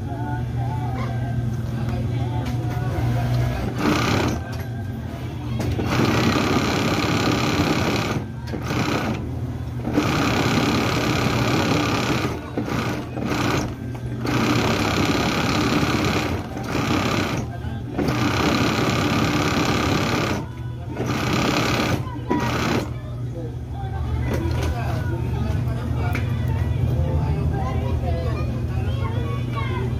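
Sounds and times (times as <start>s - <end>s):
sewing machine stitching: 3.6s - 4.4s, 5.7s - 22.9s.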